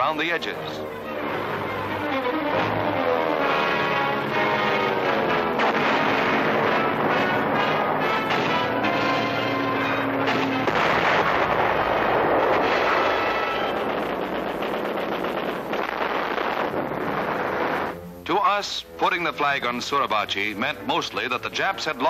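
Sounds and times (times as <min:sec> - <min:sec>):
orchestral music with held notes: 0:00.0 - 0:10.7, 0:17.9 - 0:22.0
explosions: 0:01.1 - 0:18.0
gunfire: 0:03.4 - 0:18.0.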